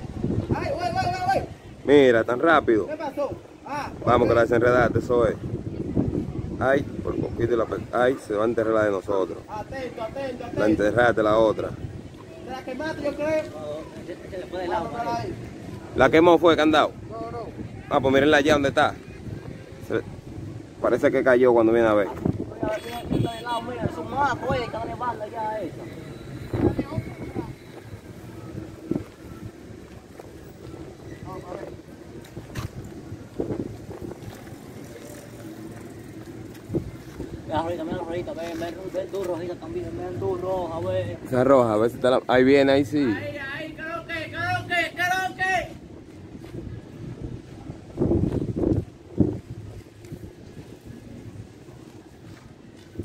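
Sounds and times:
faint voices: 0.0s - 53.0s
wind buffeting microphone: 0.0s - 53.0s.

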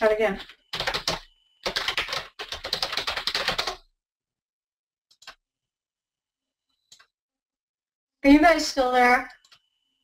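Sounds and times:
typing on computer keyboard: 0.4s - 3.9s, 5.1s - 5.4s.

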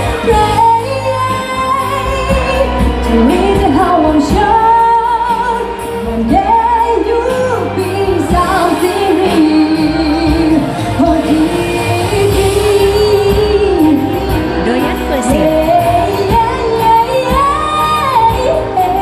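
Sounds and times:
woman singing into a microphone: 0.0s - 19.0s.

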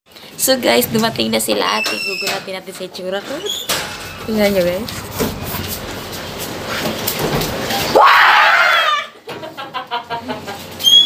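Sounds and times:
rooster crowing: 7.9s - 9.2s.

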